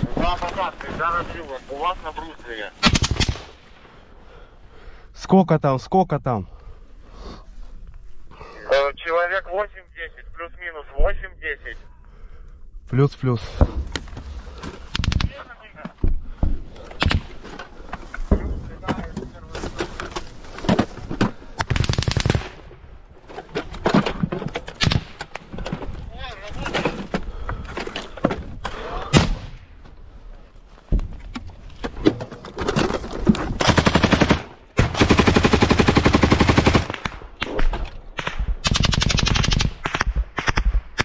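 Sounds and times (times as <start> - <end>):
automatic gunfire burst: 21.7 - 22.5, 33.6 - 37.0, 38.6 - 40.6.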